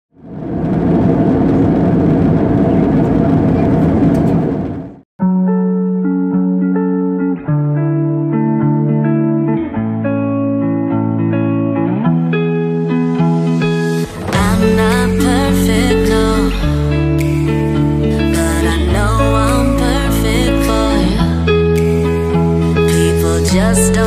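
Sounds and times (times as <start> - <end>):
loud rushing noise: 0.2 - 5.0
instrumental background music: 5.2 - 24.0.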